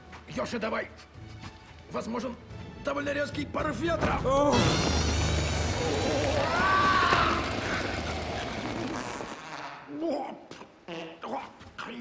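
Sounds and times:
huge fart blast: 4.5 - 9.9
voice crying out: 5.7 - 9.9.

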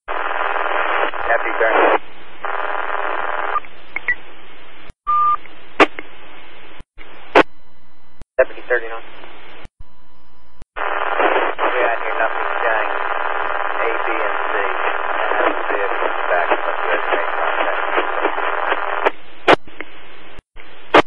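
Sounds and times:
radio static hiss: 0.0 - 4.9, 5.5 - 7.5, 8.4 - 9.7, 10.8 - 21.0
two-way radio voice: 0.8 - 2.0, 8.4 - 9.0, 10.8 - 18.8.

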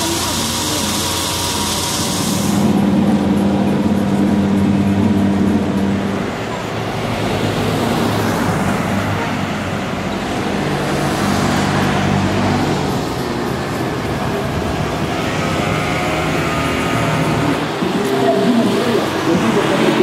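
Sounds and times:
street traffic: 0.0 - 20.0
vehicle engine humming: 0.0 - 20.0.

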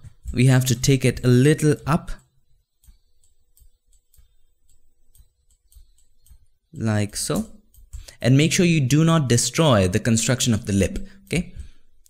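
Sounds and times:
computer mouse clicks: 1.8 - 8.6.

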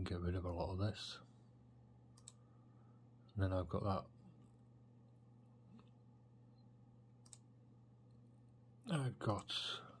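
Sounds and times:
low steady hum: 0.0 - 10.0
computer mouse clicks: 2.1 - 2.4, 7.2 - 7.5.

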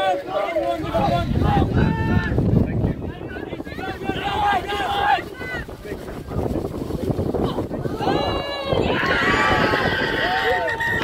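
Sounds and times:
players and onlookers shouting: 0.0 - 5.7, 7.5 - 11.0
wind rumbling on microphone: 0.0 - 11.0.

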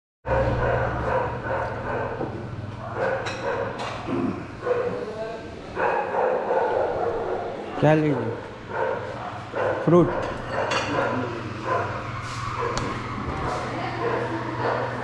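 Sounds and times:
room noise: 0.3 - 15.0.

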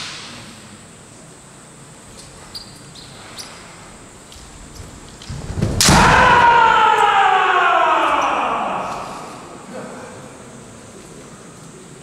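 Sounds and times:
loud kiai shout: 5.8 - 9.8.

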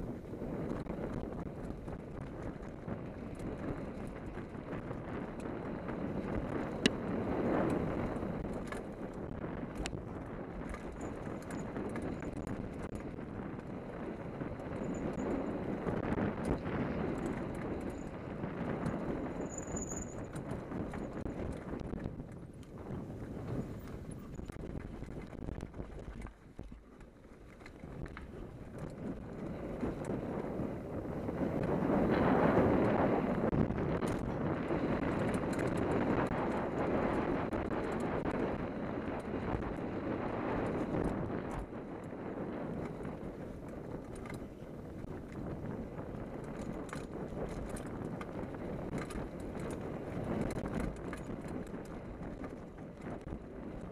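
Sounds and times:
bike tyres rolling over dirt: 0.0 - 53.9
bike clattering over bumps: 0.1 - 39.9, 40.5 - 53.9.

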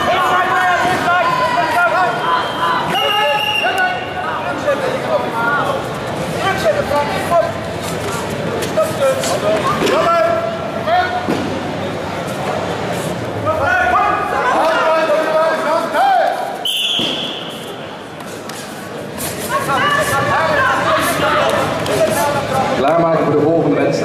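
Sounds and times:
people shouting in echoing hall: 0.0 - 4.6, 13.4 - 17.5, 19.5 - 22.3
short high whistle-like tone: 16.6 - 17.6.

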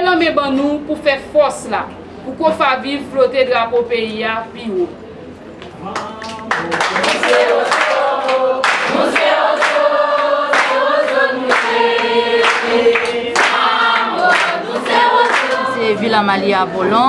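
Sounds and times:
hand claps: 5.6 - 15.7
group of voices singing: 6.0 - 17.0.

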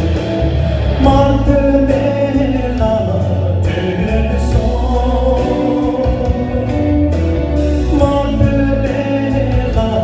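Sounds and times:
amplified instrumental accompaniment: 0.0 - 10.0
man singing into microphone: 0.0 - 10.0.

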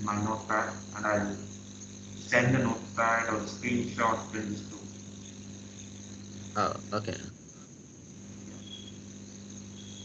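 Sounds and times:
steady low hum: 0.0 - 10.0
high chirps: 8.6 - 10.0.

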